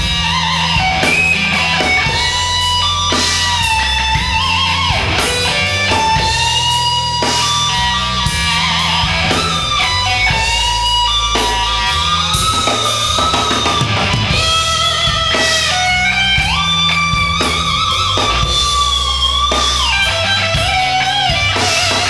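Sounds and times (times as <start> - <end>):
bass and drums: 0.0 - 22.0
electric guitar lead notes: 0.0 - 22.0.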